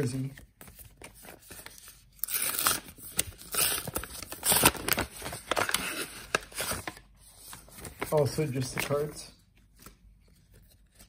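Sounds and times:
paper envelope tearing: 0:02.2 - 0:07.0.

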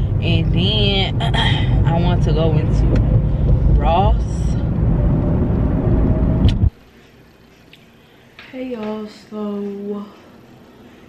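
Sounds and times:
car road noise rumble: 0:00.0 - 0:06.8.

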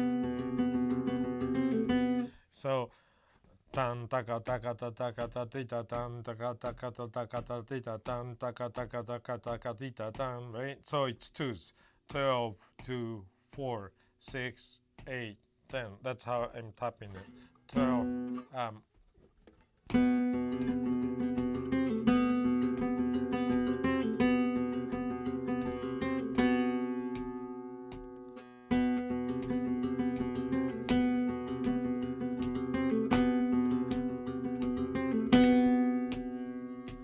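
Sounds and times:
flamenco guitar playing: 0:00.0 - 0:02.3, 0:17.2 - 0:18.5, 0:19.8 - 0:37.0.

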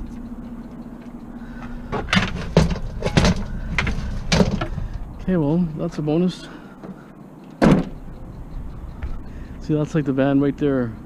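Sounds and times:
metal chairs knocking and clattering: 0:01.9 - 0:05.0.

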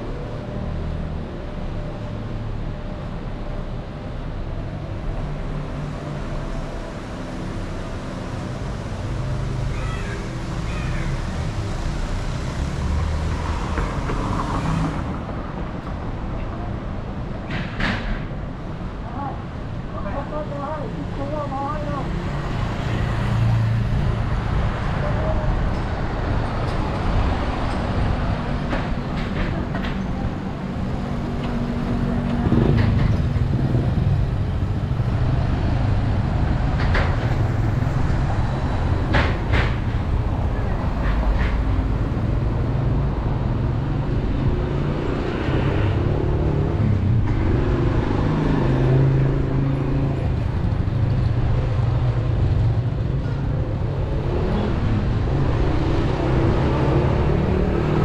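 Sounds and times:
car engines passing: 0:00.0 - 0:58.0
steady roadway noise: 0:00.0 - 0:58.0
street traffic rumble: 0:00.0 - 0:58.0.

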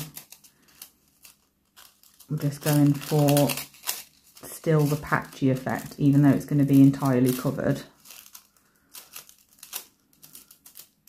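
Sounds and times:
foil crinkling: 0:00.0 - 0:11.0.

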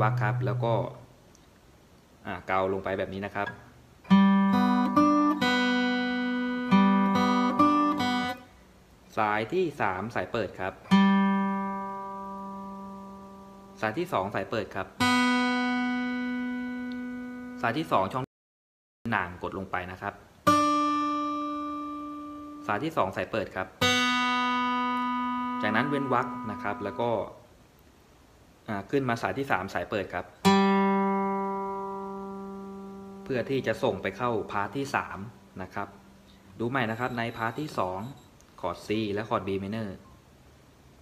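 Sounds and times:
acoustic guitar string plucked: 0:03.5 - 0:08.4, 0:10.9 - 0:13.8, 0:15.0 - 0:17.8, 0:20.5 - 0:22.7, 0:23.8 - 0:27.2, 0:30.4 - 0:35.0
guitar string plucked: 0:15.0 - 0:17.6, 0:23.8 - 0:27.1, 0:30.5 - 0:34.9.

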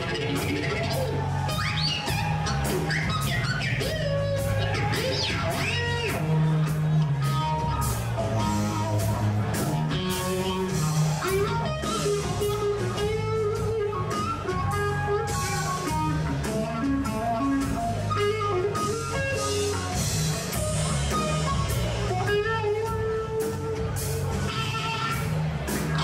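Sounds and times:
bass line: 0:00.0 - 0:26.0
electric guitar lead melody: 0:00.0 - 0:26.0.

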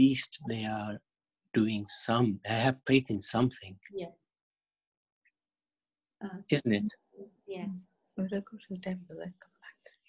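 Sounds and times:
person speaking quietly: 0:00.0 - 0:01.0, 0:01.6 - 0:03.7, 0:06.5 - 0:06.9.

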